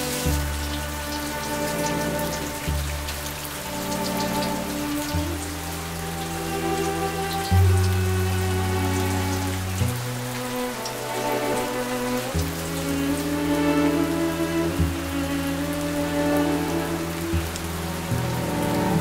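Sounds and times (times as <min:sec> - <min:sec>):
slow ambient music: 0:00.0 - 0:19.0
steady rain: 0:00.0 - 0:19.0.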